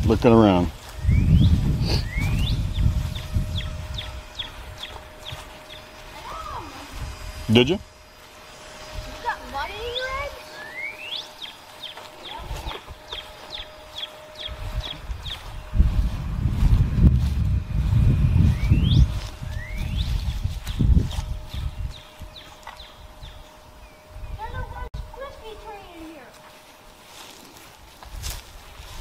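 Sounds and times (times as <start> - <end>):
low rumble on microphone: 0.0 - 8.0, 12.4 - 25.2
songbird singing: 0.8 - 26.3.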